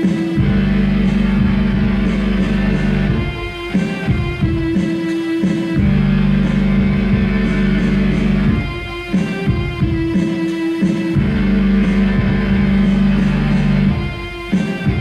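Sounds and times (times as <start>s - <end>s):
electronic keyboard chords: 0.0s - 15.0s.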